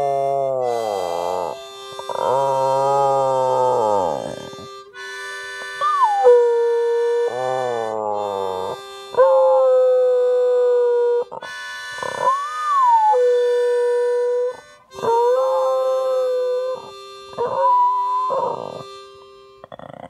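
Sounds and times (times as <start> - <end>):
dog howling: 0.0 - 4.8, 5.7 - 19.0
harmonica long held notes: 0.0 - 20.0.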